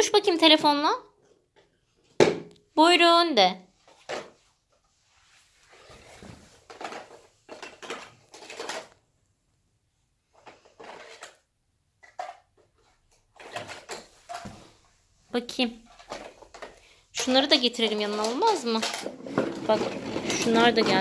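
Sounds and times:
plastic toy tools clattering: 0:06.6 - 0:09.0, 0:10.3 - 0:14.4, 0:15.9 - 0:21.0.

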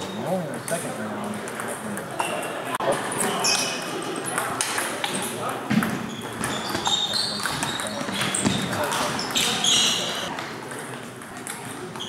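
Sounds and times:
background chatter in a hall: 0:00.0 - 0:12.0.

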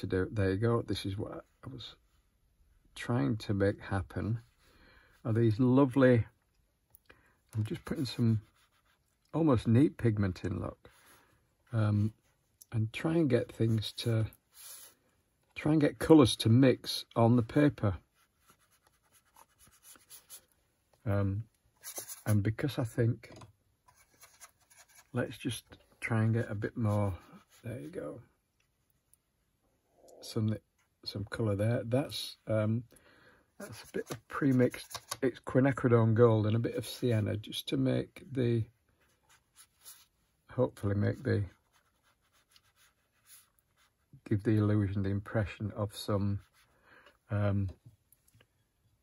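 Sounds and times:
paintbrush scuffing on paper: 0:07.6 - 0:09.2, 0:13.2 - 0:15.1, 0:18.0 - 0:20.6, 0:21.7 - 0:22.5, 0:23.8 - 0:25.3, 0:33.6 - 0:35.2, 0:39.0 - 0:40.3, 0:41.0 - 0:44.1, 0:46.3 - 0:46.8.

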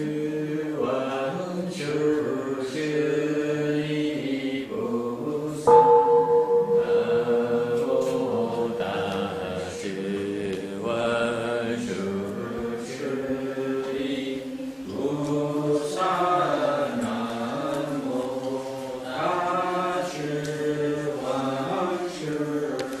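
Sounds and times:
group chanting in unison: 0:00.0 - 0:23.0
struck bell ringing: 0:05.7 - 0:09.1.

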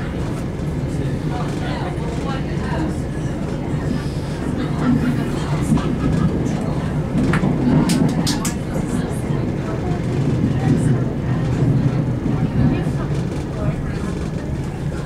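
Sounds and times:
train rumbling on rails: 0:00.0 - 0:15.0.

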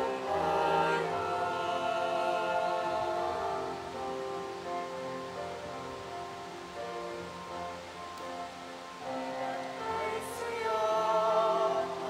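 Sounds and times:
choir singing a hymn: 0:00.0 - 0:05.0, 0:09.0 - 0:12.0.

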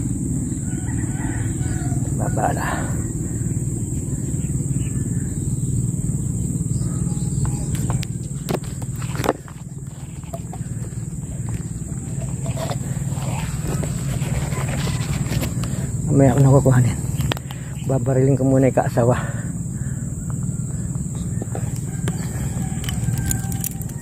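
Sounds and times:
high insect trill: 0:00.0 - 0:24.0.

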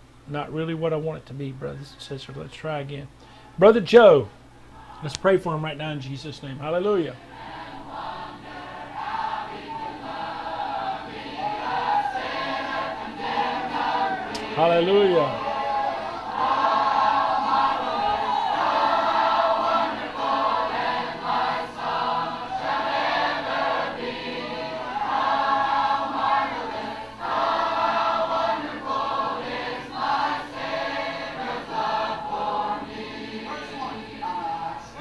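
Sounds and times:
choir singing: 0:07.2 - 0:35.0.

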